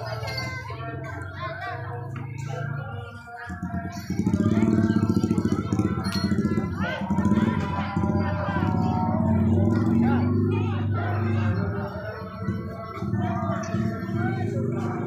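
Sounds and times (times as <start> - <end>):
people's voices: 0.0 - 15.0
traditional accompaniment music: 0.0 - 15.0.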